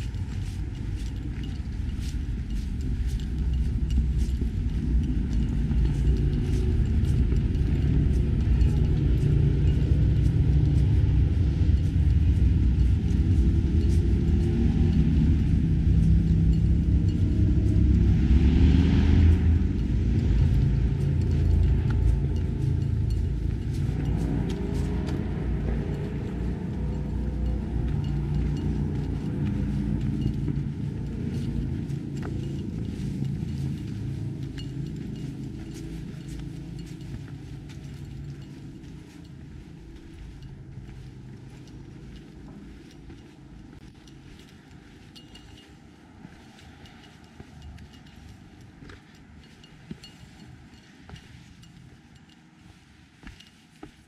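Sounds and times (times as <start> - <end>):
loud low rumble: 0.0 - 42.6.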